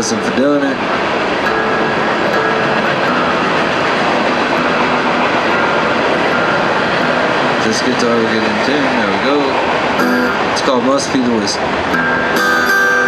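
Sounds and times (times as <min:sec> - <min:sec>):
acoustic guitar notes: 0:00.0 - 0:13.0
rushing background noise: 0:00.0 - 0:13.0.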